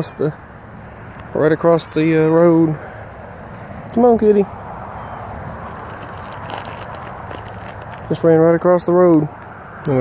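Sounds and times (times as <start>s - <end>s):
steady outdoor background hiss: 0.0s - 10.0s
footsteps on asphalt: 2.9s - 8.4s.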